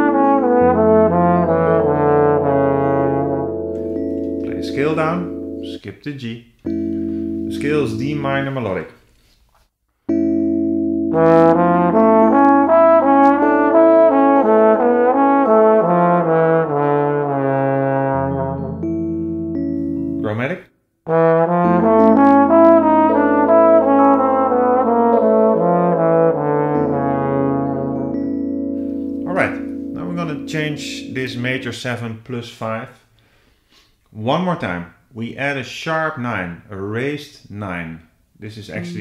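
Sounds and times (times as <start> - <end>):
sustained backing chord and bass: 0.0 - 5.8, 6.7 - 8.8, 10.1 - 20.4, 21.1 - 31.8
trombone playing arpeggio and scale: 0.0 - 5.8, 6.7 - 8.8, 10.2 - 20.4, 21.1 - 32.0.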